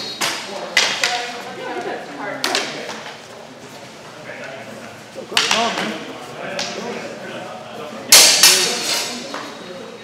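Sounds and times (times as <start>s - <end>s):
faint voices with hall echo: 0.0s - 10.0s.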